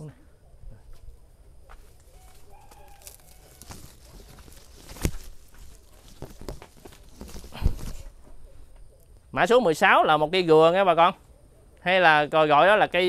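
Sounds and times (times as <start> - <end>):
shuffling footsteps: 0.7 - 8.9.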